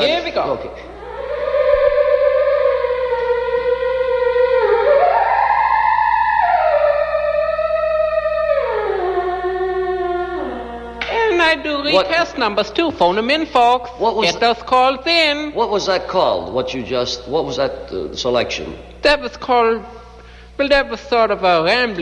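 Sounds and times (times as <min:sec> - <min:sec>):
theremin melody: 0:00.0 - 0:12.6.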